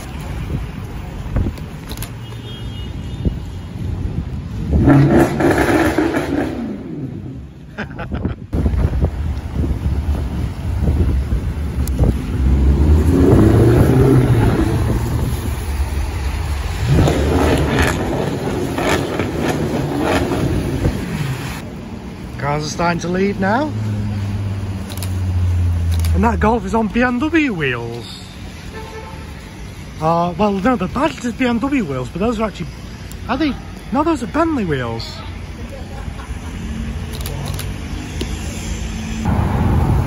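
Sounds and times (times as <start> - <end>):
car engines revving: 4.0 - 40.0
tyres hissing on wet road: 8.8 - 40.0.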